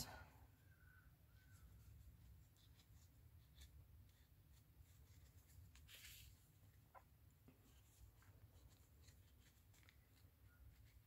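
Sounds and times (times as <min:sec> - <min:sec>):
yarn rustling through crochet: 0:01.3 - 0:11.0.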